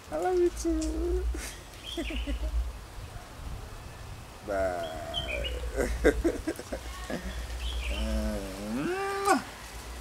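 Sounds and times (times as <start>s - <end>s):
man laughing: 1.4s - 2.6s, 5.6s - 7.4s
bird chirps: 1.8s - 2.4s, 4.8s - 5.8s, 7.2s - 8.1s.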